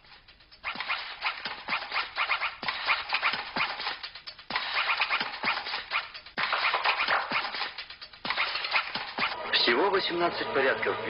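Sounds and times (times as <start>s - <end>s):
scratchy crackling sound-effect music: 0.0s - 10.2s.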